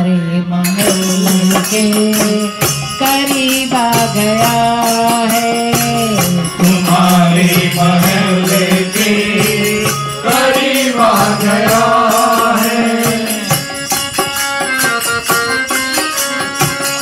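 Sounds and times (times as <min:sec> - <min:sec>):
hand percussion beat: 0:00.7 - 0:17.0
harmonium playing held notes: 0:00.7 - 0:17.0.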